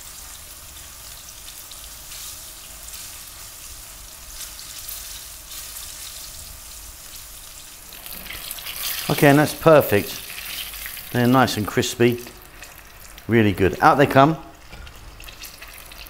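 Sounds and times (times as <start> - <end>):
chicken frying in oil: 0.0 - 16.0.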